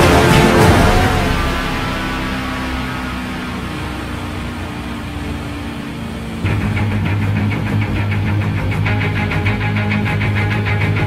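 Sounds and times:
loud rock music: 0.0s - 3.6s, 6.4s - 11.0s
car engine idling: 0.0s - 11.0s.

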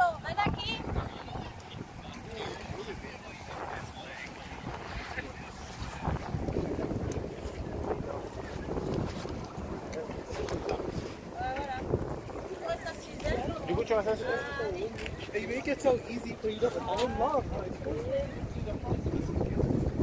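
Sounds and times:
people's voices: 0.0s - 20.0s
wind rumbling on microphone: 0.0s - 20.0s.

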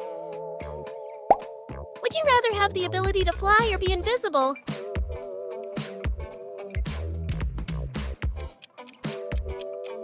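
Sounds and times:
rising pop sound effect: 1.3s - 1.5s.

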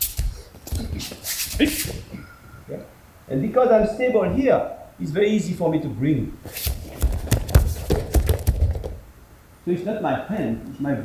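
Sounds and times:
bare feet on gym mats: 0.0s - 2.2s, 6.4s - 9.1s
uniforms rustling: 0.0s - 2.3s, 6.4s - 9.1s
low thuds on mats: 6.9s - 9.0s.

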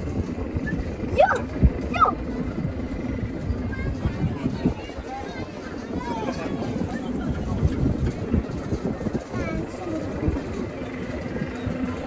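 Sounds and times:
amusement ride rumbling and knocking: 0.0s - 12.0s.

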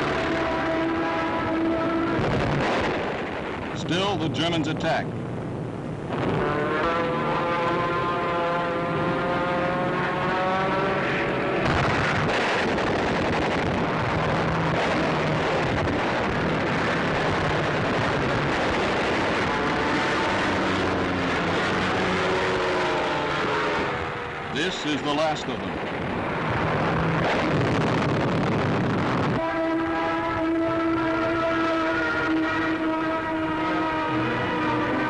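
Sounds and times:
propeller aircraft engines droning: 0.0s - 35.0s.

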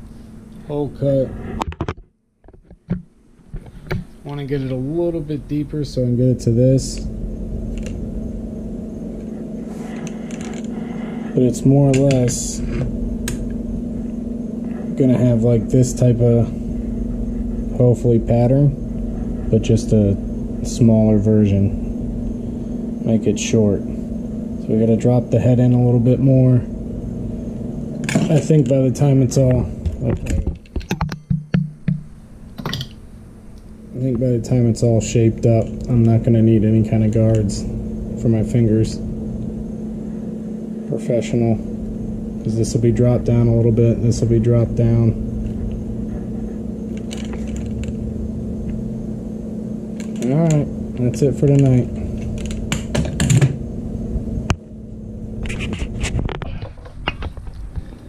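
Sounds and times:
low room hum: 0.0s - 58.0s.

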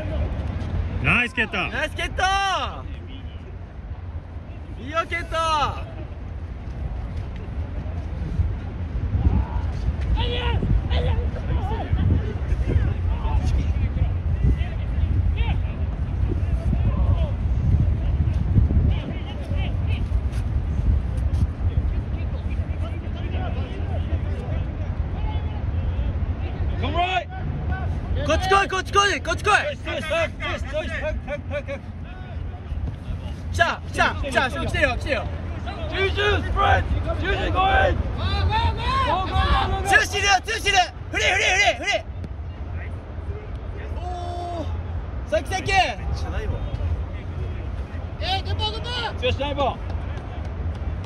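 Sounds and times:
steady low rumble: 0.0s - 41.2s
distant players shouting: 22.5s - 51.0s.

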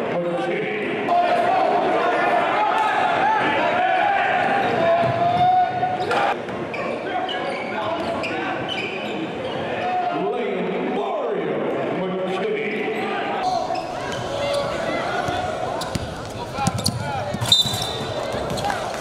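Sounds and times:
people shouting: 1.1s - 6.4s, 13.1s - 19.0s
sneakers squeaking: 4.6s - 10.0s, 12.8s - 19.0s
basketball bouncing: 14.1s - 19.0s.

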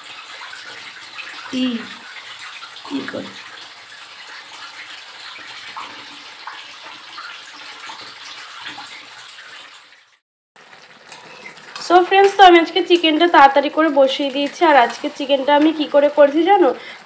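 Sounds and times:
water running: 0.0s - 17.0s.

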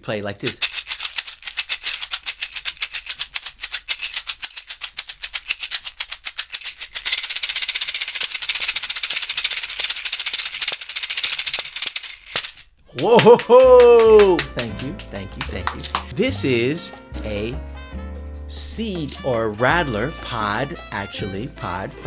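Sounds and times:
seed pod rattle shaking: 0.4s - 12.8s, 18.9s - 19.6s.

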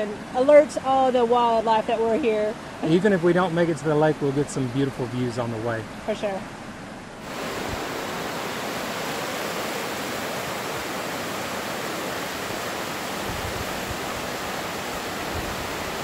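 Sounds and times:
creek rushing over rocks: 7.2s - 16.0s.

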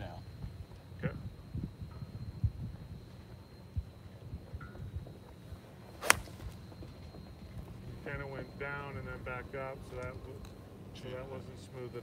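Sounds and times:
wind rumbling on microphone: 0.0s - 10.9s
golf club striking ball: 6.0s - 6.4s.

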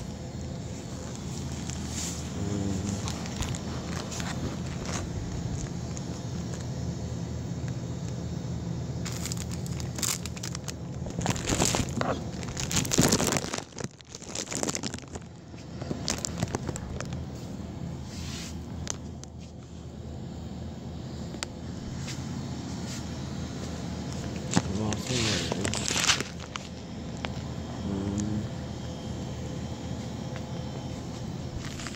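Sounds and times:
steady low hum: 0.0s - 31.9s
rustling and crinkling: 0.7s - 6.7s, 9.0s - 19.7s, 21.9s - 27.5s, 30.0s - 31.9s.

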